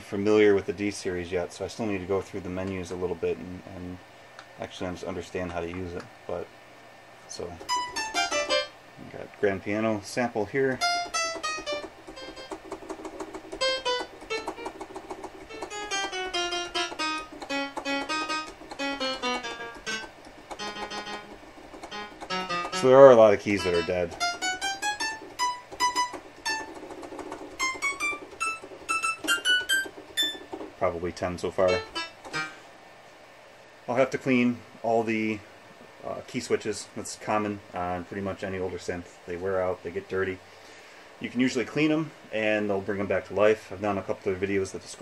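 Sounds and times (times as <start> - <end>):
synthesizer piano single notes: 7.6 - 8.8, 10.8 - 30.8, 31.6 - 32.6.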